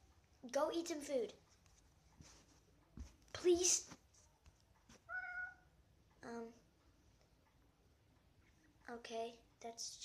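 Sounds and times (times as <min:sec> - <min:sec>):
cat meowing: 0:05.1 - 0:05.7.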